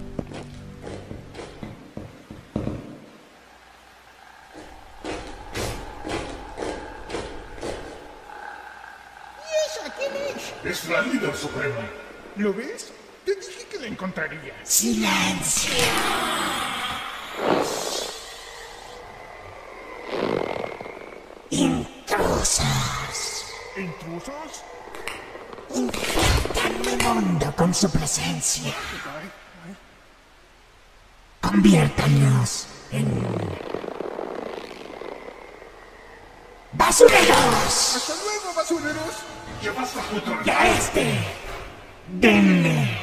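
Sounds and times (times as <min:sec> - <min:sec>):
loud hissing rush: 0:01.9 - 0:43.0.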